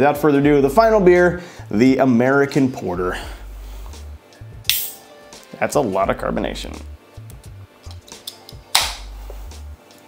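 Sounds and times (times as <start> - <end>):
can tab popping open: 4.7 - 5.0.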